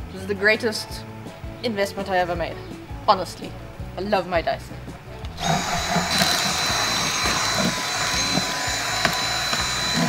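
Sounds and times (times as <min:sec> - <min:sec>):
cordless vacuum whining: 0:05.3 - 0:10.0
vacuum brush on carpet: 0:05.4 - 0:10.0.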